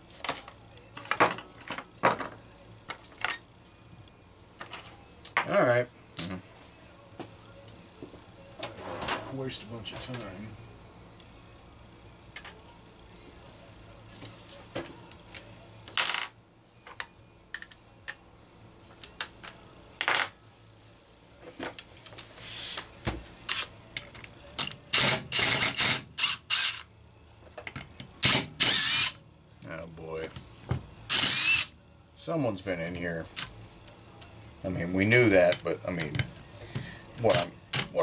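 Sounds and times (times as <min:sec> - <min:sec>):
cordless drill running: 0:28.6 - 0:29.2.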